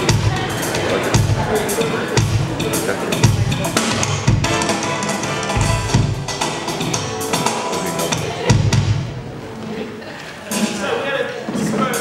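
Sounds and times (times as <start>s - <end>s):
electronic drum kit: 0.0s - 9.4s
bass drum hit ringing: 5.4s - 7.5s.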